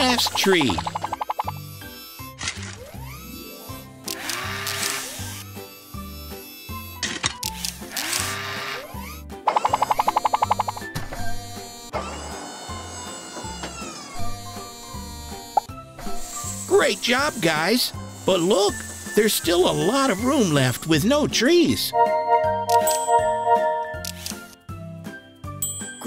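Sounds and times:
bouncy cartoon music: 0.0s - 3.9s, 8.8s - 11.6s, 12.4s - 26.0s.

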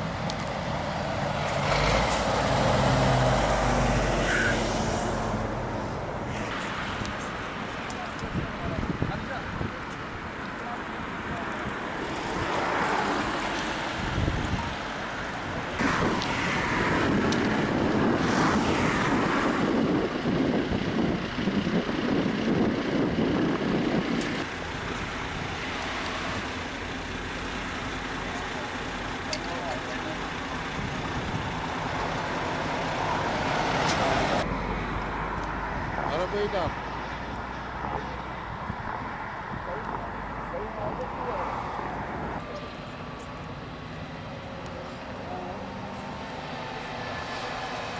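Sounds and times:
traffic passing: 0.0s - 47.9s
wind on microphone: 8.2s - 9.8s, 13.3s - 26.5s.

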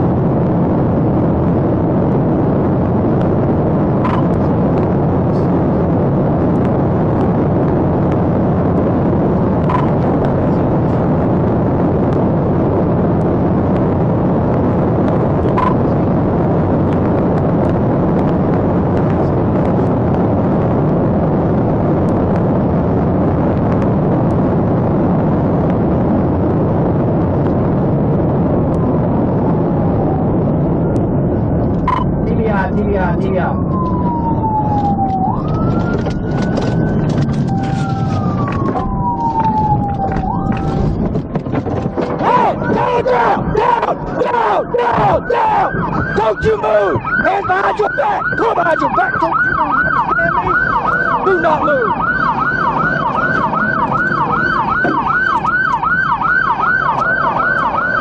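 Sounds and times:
road and wind noise inside car: 0.0s - 58.0s.

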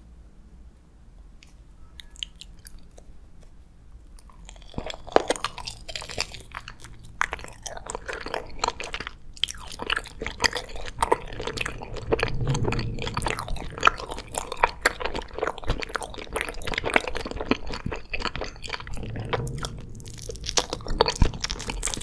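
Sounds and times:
chewing with clicks and smacks: 1.4s - 3.1s, 4.2s - 22.0s
biting gummy candy: 4.2s - 22.0s.

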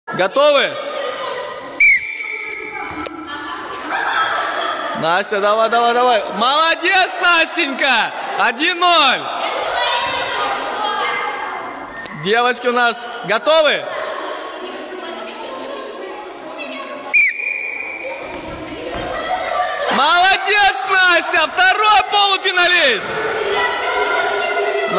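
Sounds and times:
children's voices: 0.4s - 6.3s, 9.2s - 12.2s, 13.1s - 24.9s
shrill whistle note: 1.8s - 2.6s, 17.1s - 18.1s
whistle click: 1.8s - 2.7s, 17.1s - 18.1s.

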